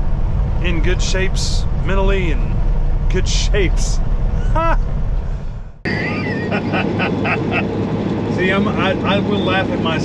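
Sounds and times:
truck engine and road drone: 0.0 - 10.0
man laughing: 4.4 - 4.9, 5.9 - 7.7.

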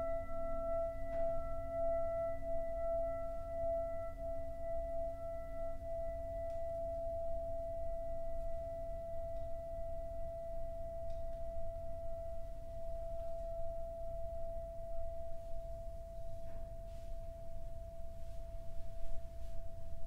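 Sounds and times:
singing bowl sustained tone: 0.0 - 20.0.

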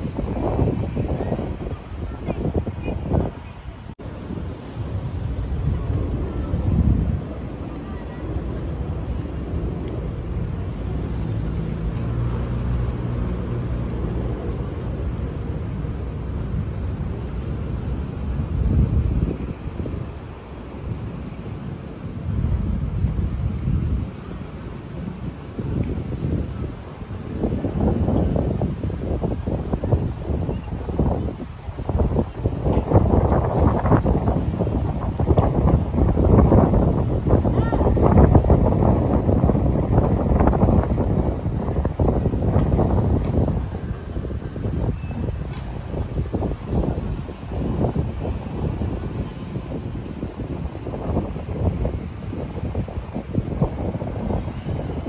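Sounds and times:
street traffic: 0.0 - 55.0
wind rumbling on microphone: 0.0 - 55.0.

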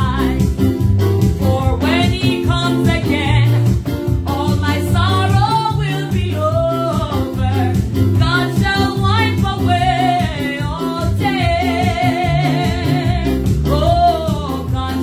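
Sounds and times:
woman singing gospel: 0.0 - 0.5, 1.4 - 15.0
electronic keyboard accompaniment: 0.0 - 15.0.

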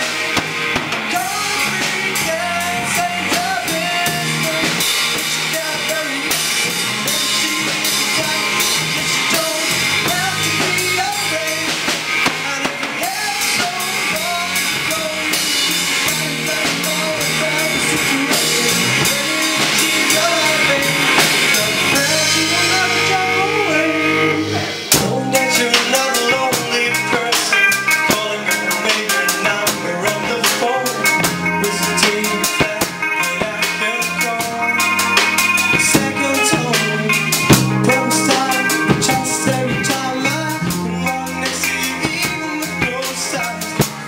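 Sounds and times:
bass guitar: 0.0 - 44.0
drum kit: 0.0 - 44.0
electric guitar: 0.0 - 44.0
person singing: 1.0 - 44.0.

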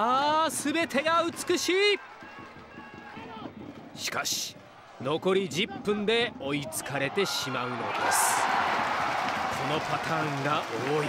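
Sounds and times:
faint stadium crowd ambience: 0.0 - 11.0.

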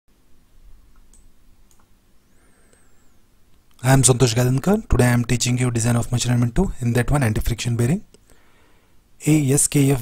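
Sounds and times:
low background hum: 0.1 - 10.0
faint sharp clicks: 0.9 - 1.9.

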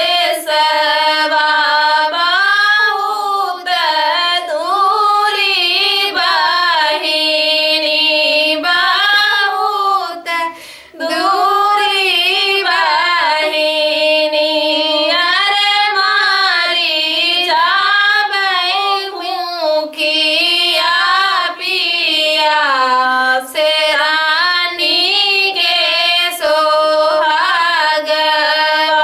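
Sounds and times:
women singing folk song unaccompanied: 0.0 - 29.0.

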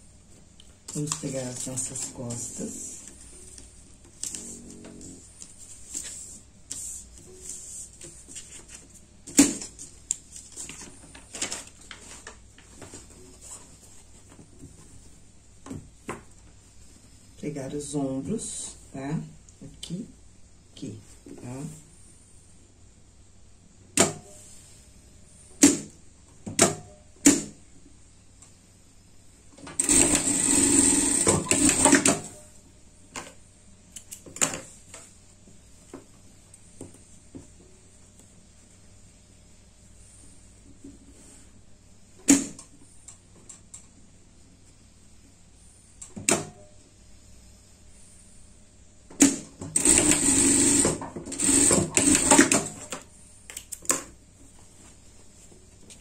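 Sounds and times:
sewing machine running: 29.8 - 32.2, 49.7 - 52.7.

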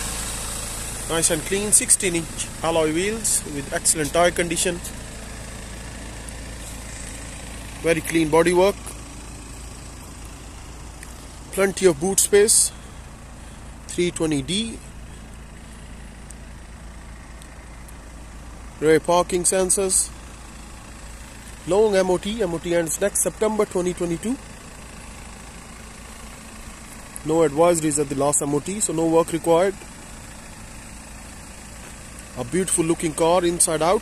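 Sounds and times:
diesel engine idling: 0.0 - 34.0.

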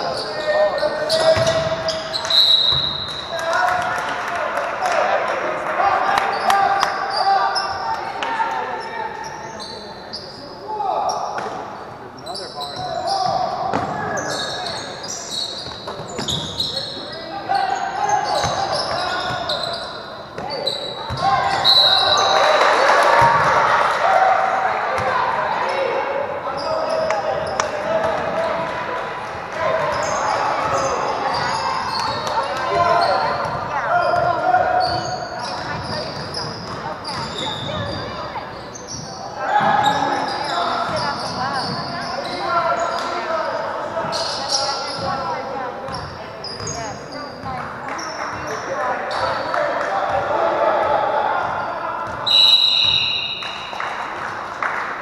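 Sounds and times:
sneaker squeaks: 0.0 - 3.6, 6.1 - 22.6, 25.0 - 28.7, 29.7 - 50.2, 51.4 - 54.0
indistinct shouting and chatter: 0.0 - 55.0.

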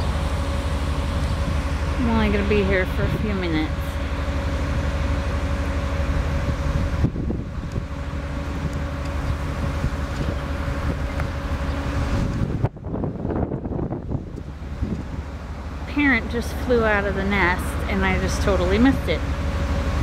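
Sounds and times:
steady low hum: 0.0 - 20.0
wind buffeting microphone: 0.0 - 20.0.

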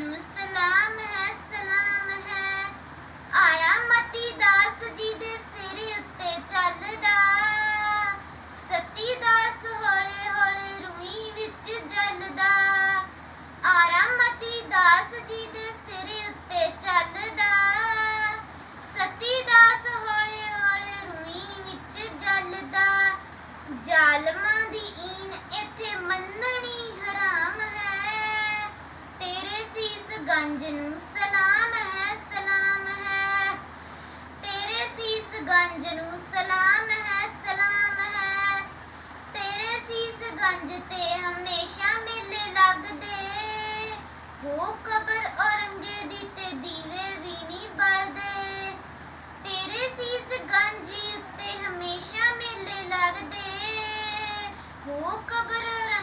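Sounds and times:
girl singing chant-like recitation: 0.0 - 56.0.

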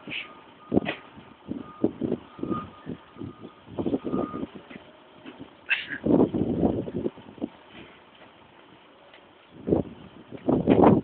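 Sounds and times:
reversing alarm beeping: 0.2 - 4.6.

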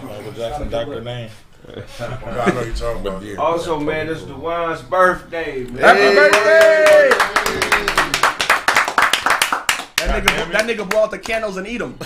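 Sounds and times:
people clapping: 5.9 - 11.6.

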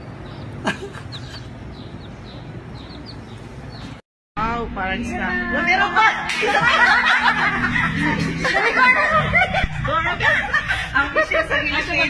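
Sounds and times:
people laughing: 0.6 - 1.5, 5.8 - 12.0.

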